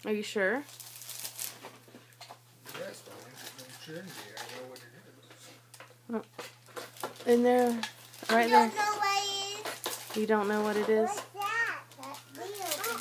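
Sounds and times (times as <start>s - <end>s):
wrapping paper rustling and tearing: 0.6s - 1.9s, 2.7s - 4.8s, 6.6s - 13.0s.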